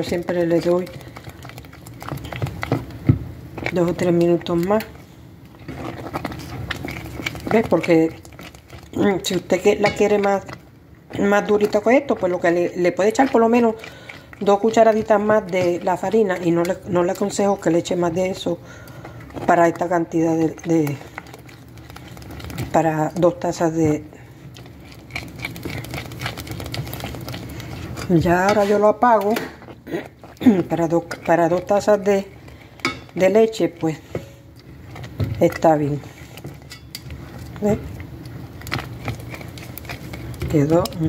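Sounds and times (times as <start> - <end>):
utensil stirring porridge: 0.0 - 41.0.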